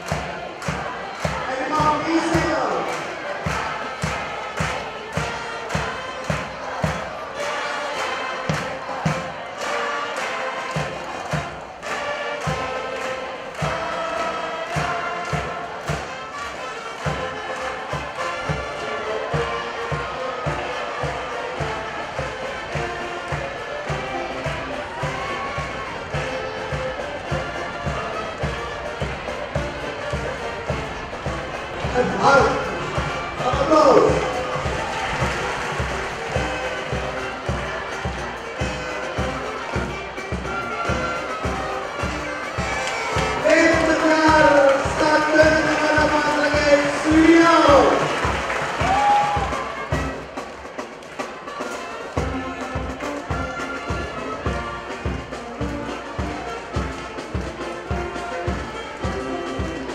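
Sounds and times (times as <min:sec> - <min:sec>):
drums steady beat: 0:00.0 - 0:59.9
horns melody: 0:00.0 - 0:59.9
marching band playing: 0:00.0 - 0:59.9.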